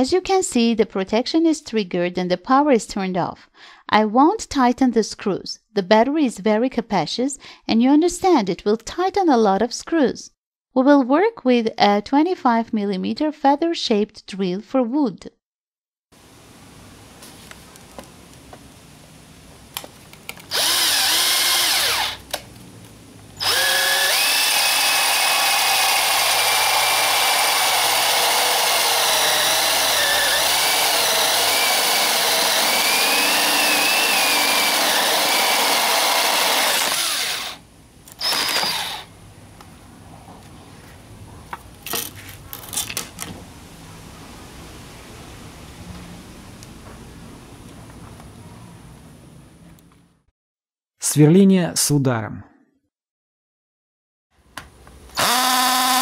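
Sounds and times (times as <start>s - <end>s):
cordless drill boring into wood: 20.5s - 22.3s, 23.4s - 39.1s, 55.2s - 56.0s.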